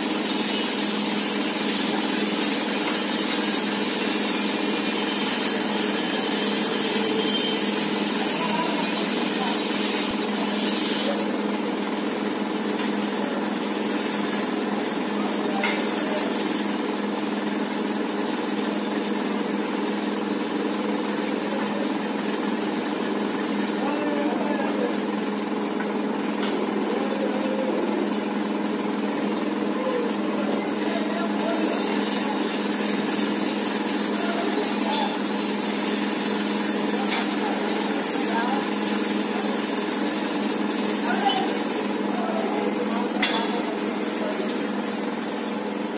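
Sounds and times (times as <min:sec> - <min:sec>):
steady mechanical hum: 0:00.0 - 0:45.9.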